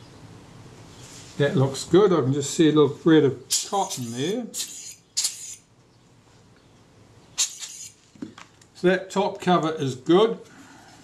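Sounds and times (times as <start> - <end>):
short puff of air: 7.4 - 8.0.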